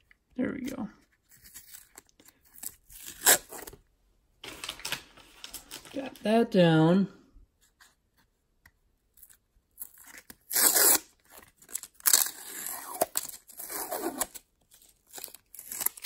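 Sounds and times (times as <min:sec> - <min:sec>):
tape peeling off plastic: 0:01.3 - 0:03.8, 0:09.2 - 0:16.0.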